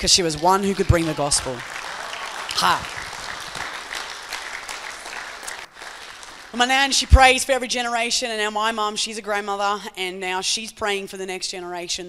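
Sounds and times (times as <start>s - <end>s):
congregation applauding: 0.0s - 7.0s.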